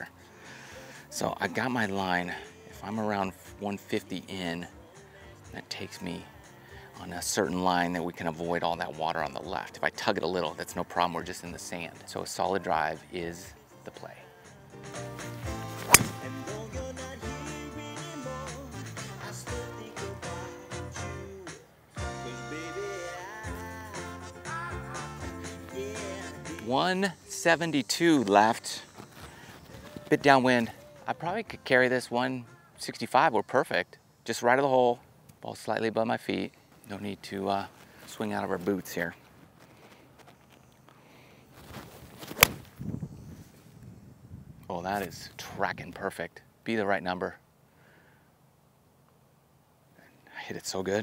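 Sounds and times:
background music: 0.0s - 32.8s
golf driver hitting ball: 15.7s - 16.5s, 42.3s - 42.6s.

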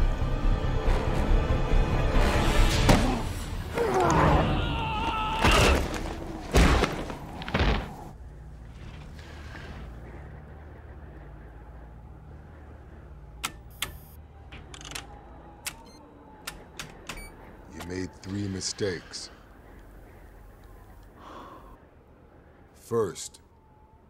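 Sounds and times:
low spaceship interior hum: 5.8s - 24.0s
sharp clicks: 13.4s - 17.2s.

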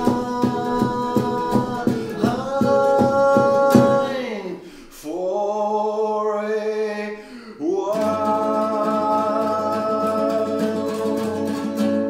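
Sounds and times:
classical guitars strummed: 0.0s - 4.1s, 7.9s - 12.0s
man singing: 0.0s - 12.0s.

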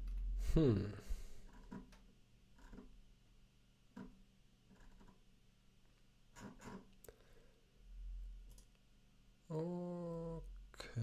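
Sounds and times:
computer mouse clicking: 2.6s - 2.9s.

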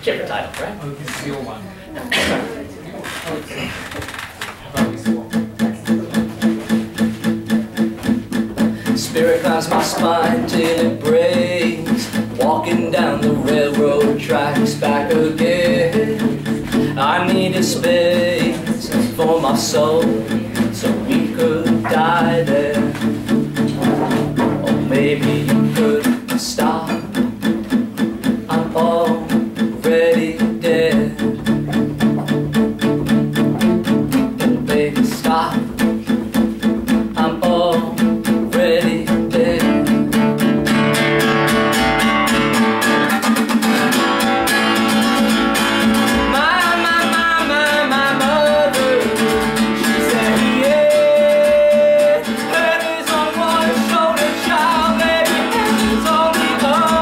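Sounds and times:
acoustic guitar strumming: 3.2s - 57.0s
man singing: 4.8s - 57.0s.

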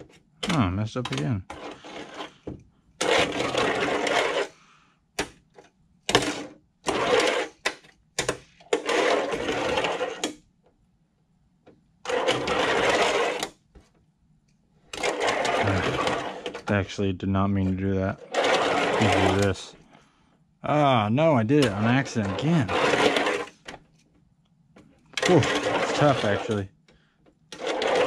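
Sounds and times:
fingerboard wheels rolling on ramp: 0.0s - 4.6s, 6.1s - 10.4s, 12.0s - 13.6s, 14.9s - 19.8s, 21.4s - 23.8s, 25.2s - 26.7s, 27.5s - 28.0s.

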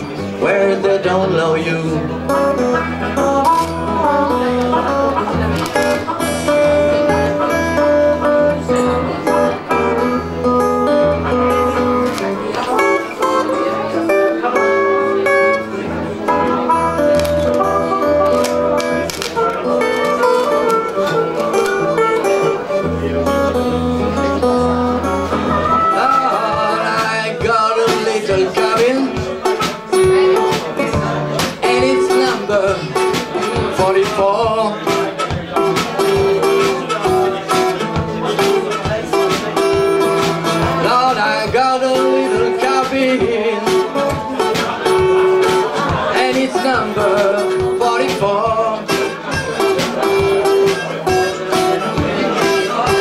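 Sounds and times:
acoustic guitar strumming: 0.0s - 53.0s.

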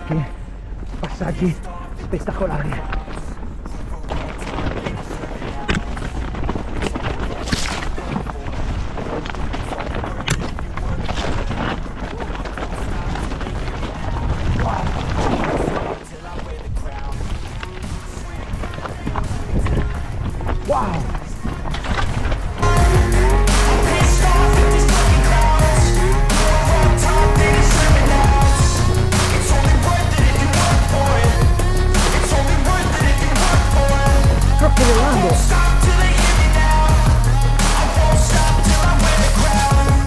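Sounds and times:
background music: 0.0s - 40.0s
bike rattling over rocks: 0.7s - 22.7s
wind noise on microphone: 2.8s - 23.0s.

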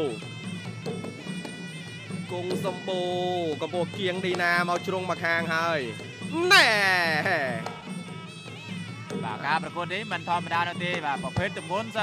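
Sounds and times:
background music: 0.0s - 12.0s
man crying out: 6.3s - 8.6s.

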